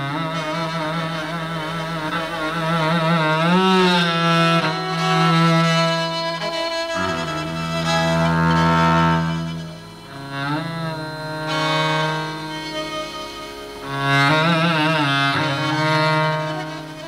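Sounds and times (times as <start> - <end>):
cello bowed melody: 0.0 - 17.0.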